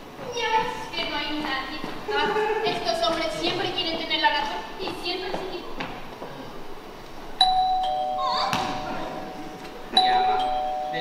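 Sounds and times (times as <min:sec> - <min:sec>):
two-note doorbell chime: 0:07.4 - 0:09.4, 0:10.0 - 0:11.0.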